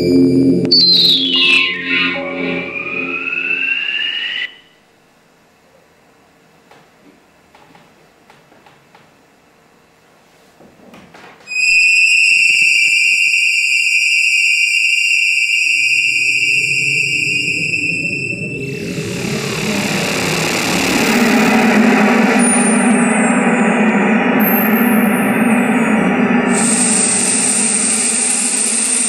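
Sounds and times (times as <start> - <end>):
low electronic rumble: 0.0 - 4.5, 16.0 - 29.0
electronic high tone: 0.0 - 4.8, 11.5 - 29.0.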